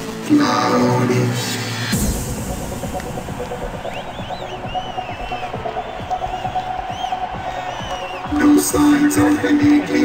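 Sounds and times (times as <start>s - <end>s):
throbbing synthesizer pulse: 1.9s - 8.3s.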